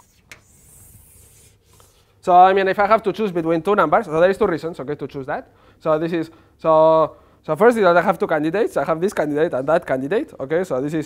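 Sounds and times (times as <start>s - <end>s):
chalk tapping on board: 0.0s - 2.0s
chalk drawn across blackboard: 0.0s - 2.1s.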